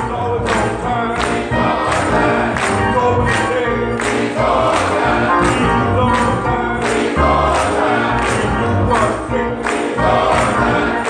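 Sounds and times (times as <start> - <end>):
hand claps on the beat: 0.0 - 11.0
men's choir singing gospel: 0.0 - 11.0.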